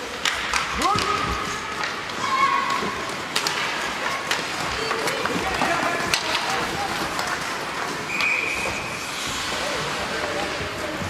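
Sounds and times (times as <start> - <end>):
hockey sticks clacking on puck: 0.0 - 11.0
skates scraping on ice: 0.0 - 11.0
referee whistle: 8.1 - 9.0.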